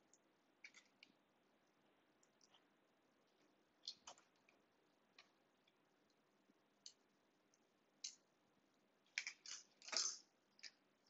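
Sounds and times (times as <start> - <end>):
small metal parts clicking: 9.1 - 10.8.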